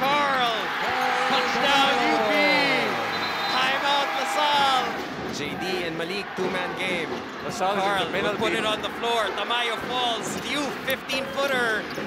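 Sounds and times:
crowd cheering and shouting: 0:00.0 - 0:10.6.

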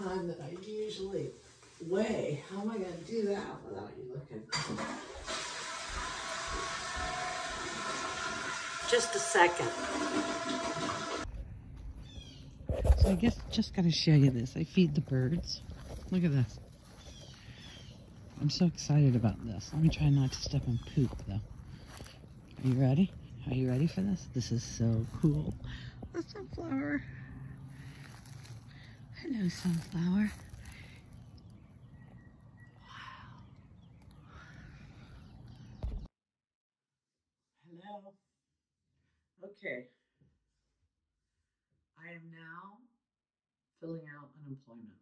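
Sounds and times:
toilet flushing: 0:04.5 - 0:11.3.

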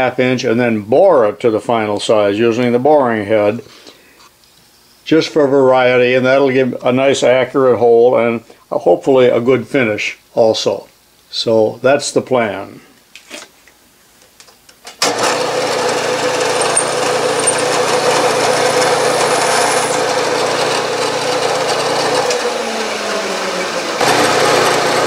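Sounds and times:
milling machine drilling hum: 0:15.1 - 0:25.0.

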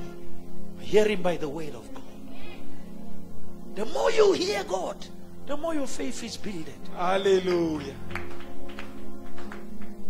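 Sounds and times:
keyboard chords: 0:00.0 - 0:10.0
person preaching: 0:03.7 - 0:08.1.

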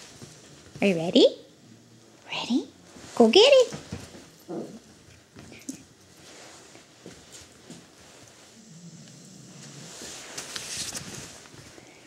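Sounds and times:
dog scuffling on blanket: 0:02.8 - 0:08.6, 0:09.5 - 0:11.9.

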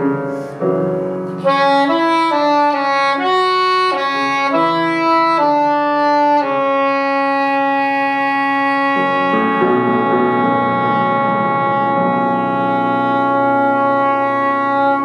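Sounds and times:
soprano saxophone melody: 0:01.4 - 0:15.0.

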